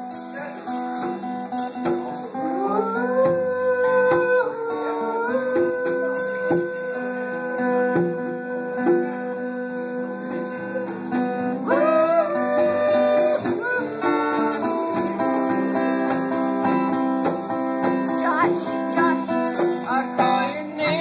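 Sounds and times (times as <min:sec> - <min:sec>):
acoustic guitar strumming: 0:00.0 - 0:21.0
man singing: 0:02.0 - 0:15.6, 0:18.1 - 0:21.0.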